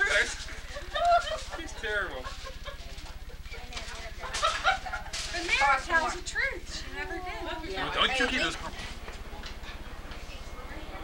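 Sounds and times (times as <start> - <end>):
people chatting: 0.0 - 11.0
laughter: 0.4 - 3.6, 4.2 - 5.3.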